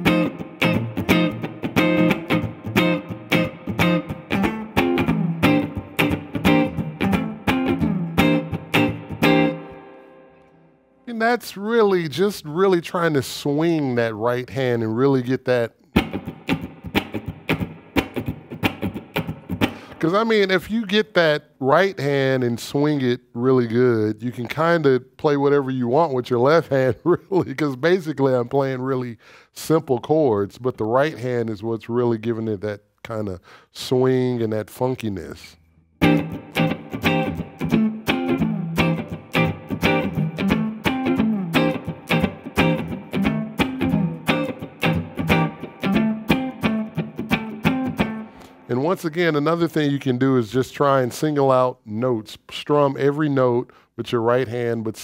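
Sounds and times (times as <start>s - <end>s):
electric guitar strumming funky rhythm: 0.0s - 11.0s, 15.8s - 20.2s, 36.0s - 49.2s.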